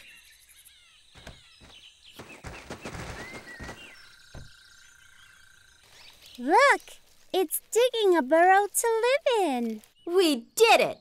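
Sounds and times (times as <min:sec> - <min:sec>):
insects: 0:00.0 - 0:07.4
birds chirping: 0:00.0 - 0:11.0.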